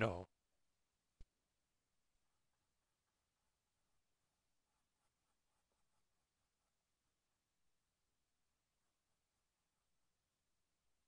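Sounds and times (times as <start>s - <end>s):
paintbrush strokes on canvas: 1.8s - 11.0s.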